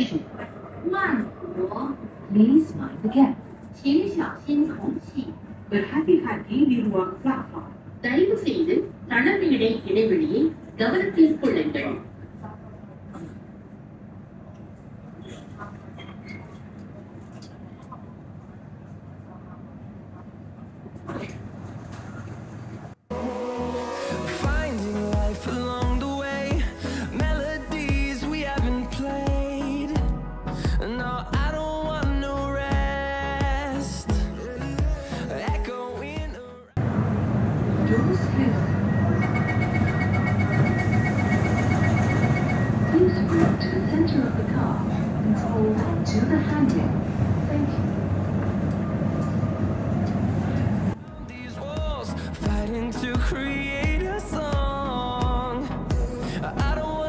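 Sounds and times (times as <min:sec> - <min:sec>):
train humming at station: 0:00.0 - 0:36.0, 0:36.7 - 0:57.0
pop music with a beat: 0:23.1 - 0:36.8, 0:51.2 - 0:57.0
rapid high door warning beeps: 0:38.6 - 0:44.1.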